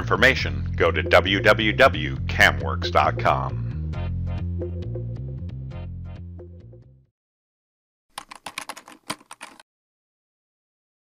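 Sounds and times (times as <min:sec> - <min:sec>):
computer keyboard typing: 0:08.2 - 0:09.6.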